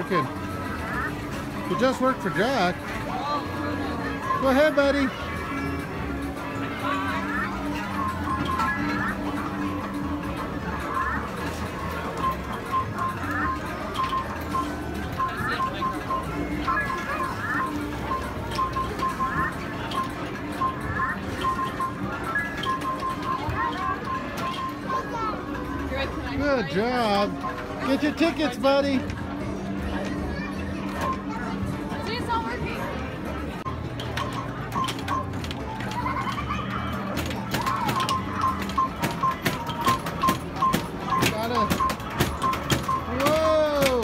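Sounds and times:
electronic arcade game tune: 0:00.0 - 0:29.0, 0:33.5 - 0:44.0
arcade noise and clicks: 0:00.0 - 0:44.0
arcade game music: 0:33.6 - 0:44.0.

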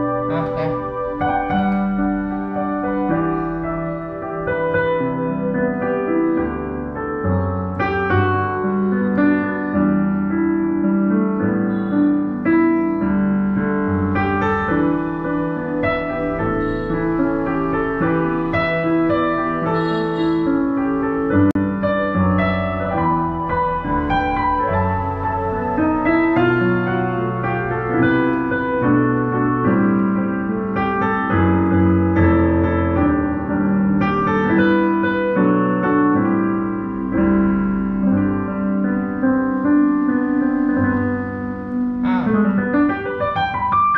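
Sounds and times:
digital piano chords: 0:00.0 - 0:43.9.

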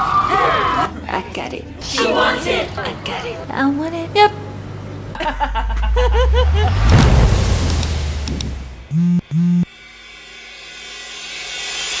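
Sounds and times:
short low buzzing tones: 0:08.2 - 0:09.7.

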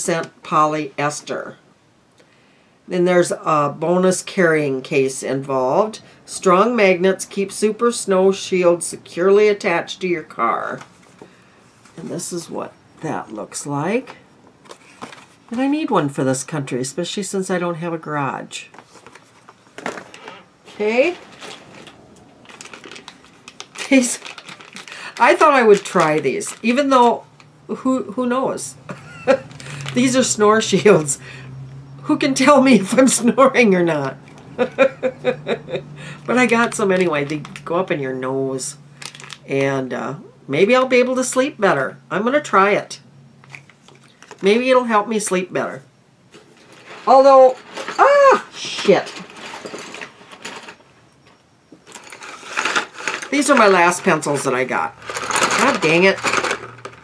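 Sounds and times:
plastic bag crinkling: 0:18.7 - 0:27.5, 0:29.0 - 0:31.2, 0:39.0 - 0:39.5, 0:43.5 - 0:44.4, 0:51.9 - 0:57.0
wooden pencils clicking and rattling: 0:21.2 - 0:27.5, 0:29.0 - 0:31.2, 0:39.0 - 0:39.7, 0:51.9 - 0:57.0.

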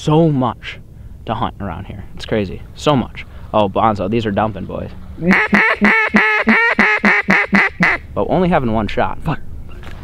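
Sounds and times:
duck call quacks: 0:05.2 - 0:08.0.

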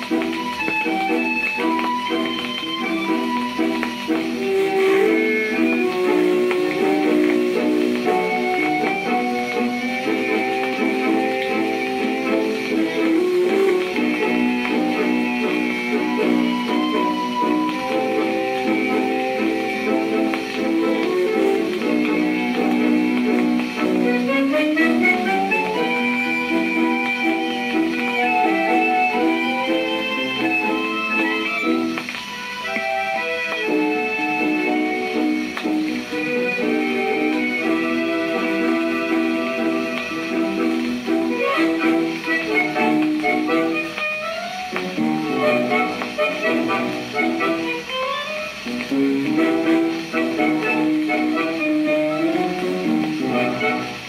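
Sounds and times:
tango on thin record player: 0:00.0 - 0:54.0.

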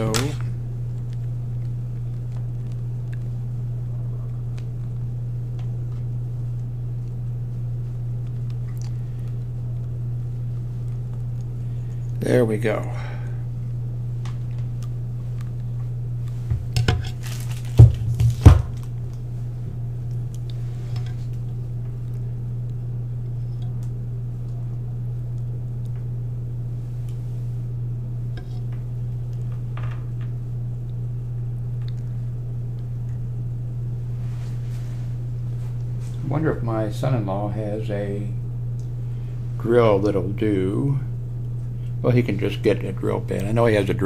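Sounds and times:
low hum: 0:00.0 - 0:44.0.

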